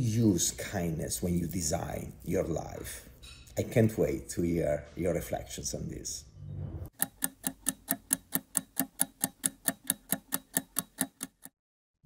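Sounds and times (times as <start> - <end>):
rapid clock-like ticking: 6.9 - 11.6.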